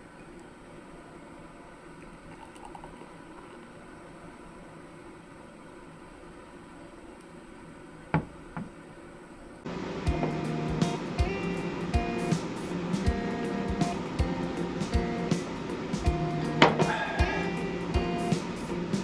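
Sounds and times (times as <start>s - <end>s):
room hum: 0.0s - 19.0s
beer pouring into glass: 1.9s - 3.9s
music: 9.7s - 19.0s
knocks on table: 16.6s - 16.9s.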